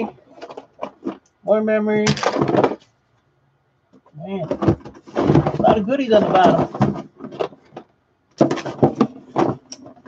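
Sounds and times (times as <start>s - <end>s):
cables and plugs rustling: 0.0s - 1.4s, 4.0s - 10.0s.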